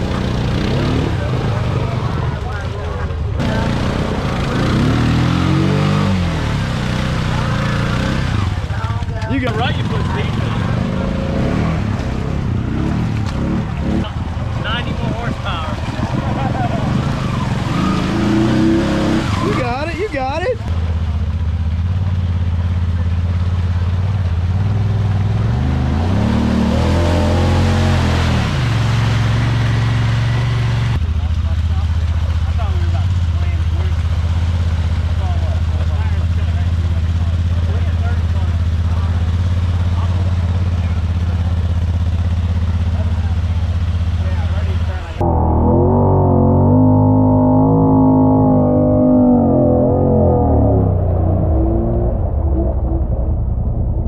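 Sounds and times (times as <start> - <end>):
off-road vehicle engine running: 0.0 - 54.0
water churning and splashing: 0.1 - 45.0.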